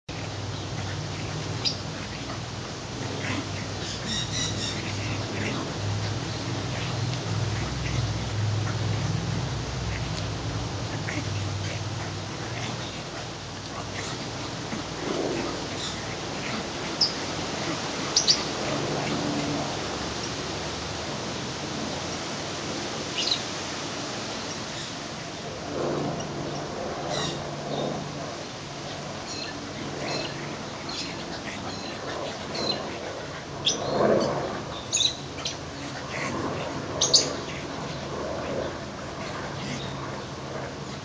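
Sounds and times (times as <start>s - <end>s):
steady low hum: 0.1s - 41.0s.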